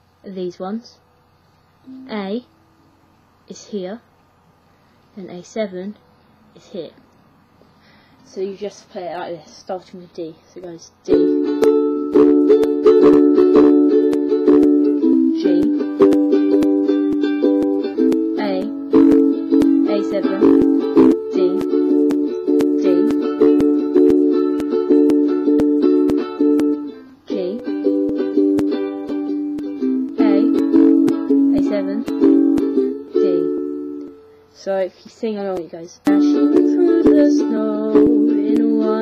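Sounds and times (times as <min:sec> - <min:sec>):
ukulele strumming: 0:01.8 - 0:02.7, 0:11.0 - 0:39.0.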